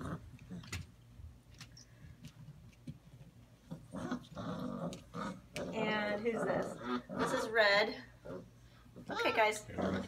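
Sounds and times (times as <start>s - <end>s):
puppies growling: 0.0s - 0.9s, 3.6s - 10.0s.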